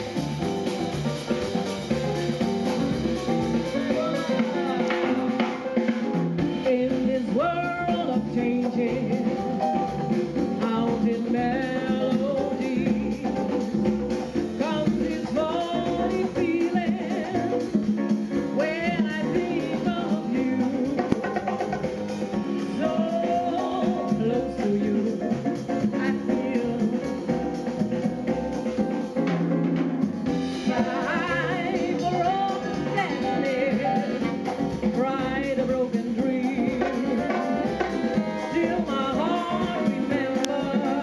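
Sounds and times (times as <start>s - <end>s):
jazz band playing samba: 0.0s - 41.0s
woman singing: 2.7s - 9.9s, 10.5s - 13.8s, 14.4s - 21.5s, 22.4s - 27.8s, 30.6s - 41.0s.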